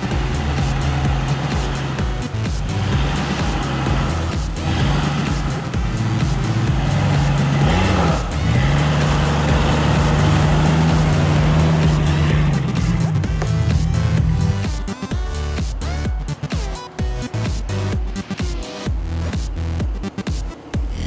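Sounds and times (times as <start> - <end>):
background music with bass: 0.0 - 21.0.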